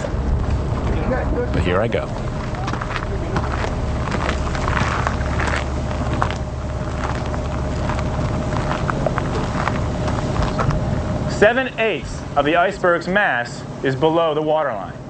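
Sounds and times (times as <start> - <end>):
boat engine humming: 0.0 - 15.0.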